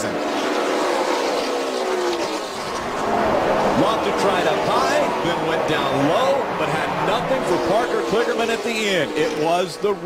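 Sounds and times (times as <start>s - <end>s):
race car engines passing: 0.0s - 10.0s.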